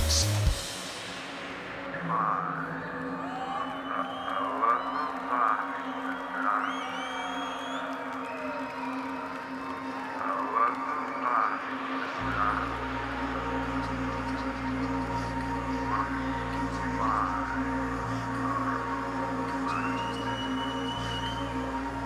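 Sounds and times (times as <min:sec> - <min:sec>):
deep bass drone: 0:00.0 - 0:00.7, 0:12.2 - 0:22.0
audience whistles: 0:02.6 - 0:12.3, 0:19.5 - 0:22.0
crowd cheering and whooping: 0:02.6 - 0:18.0, 0:18.6 - 0:22.0
electronic drone: 0:09.6 - 0:22.0.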